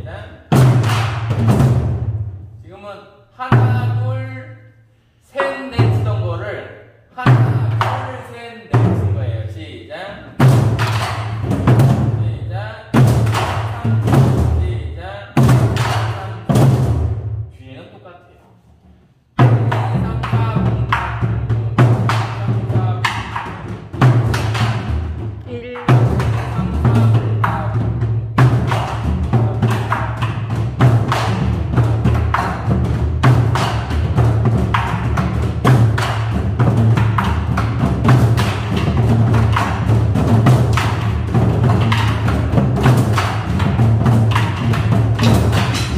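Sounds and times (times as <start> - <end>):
drums beaten with wooden sticks: 0.0 - 2.4, 3.4 - 4.1, 5.4 - 6.4, 7.2 - 9.3, 10.1 - 17.4, 19.4 - 45.9.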